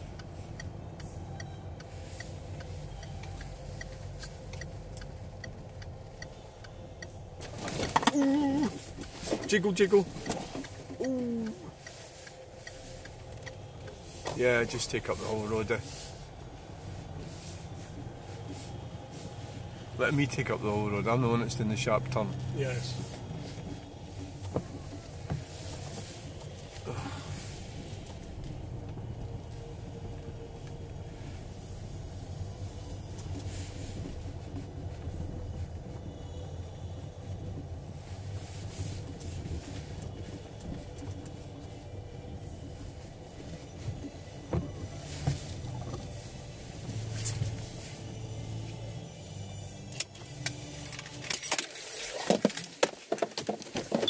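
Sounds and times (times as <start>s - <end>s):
car engine and road hum: 0.0s - 54.0s.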